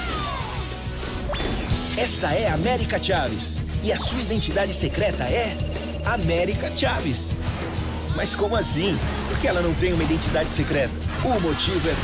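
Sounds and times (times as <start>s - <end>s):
action soundtrack music: 0.0s - 12.0s.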